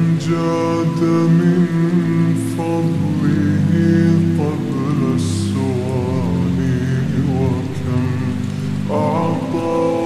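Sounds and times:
layered voices singing long notes: 0:00.0 - 0:10.0
rain: 0:00.0 - 0:10.0.

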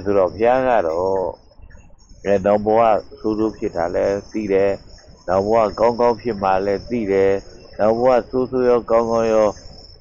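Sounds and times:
man speaking: 0:00.0 - 0:01.4, 0:02.2 - 0:09.6
high-pitched whine: 0:00.0 - 0:10.0.

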